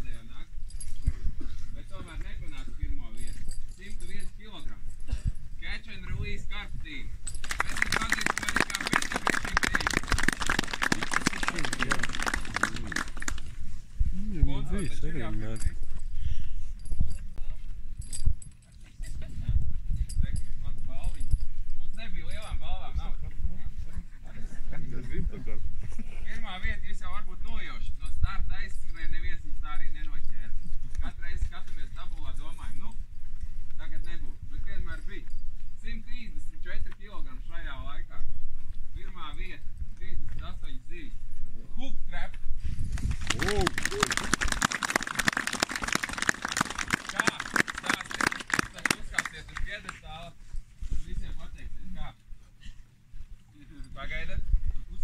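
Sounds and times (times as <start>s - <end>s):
wind buffeting microphone: 0.0s - 36.5s, 42.4s - 45.9s, 53.9s - 55.0s
crowd clapping: 7.4s - 13.6s, 43.0s - 50.0s.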